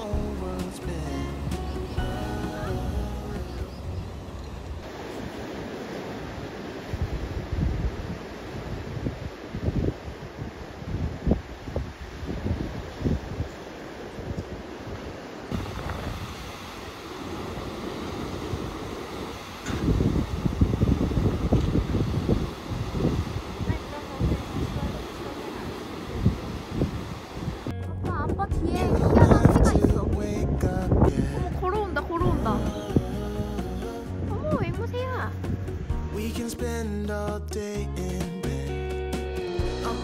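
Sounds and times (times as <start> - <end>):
wind buffeting microphone: 1.4 - 36.0
surf breaking on rocks: 4.8 - 27.7.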